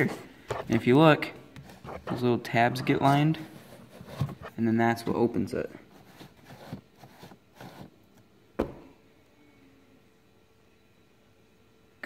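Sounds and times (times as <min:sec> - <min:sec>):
soft cardboard handling noises: 0:00.0 - 0:07.9.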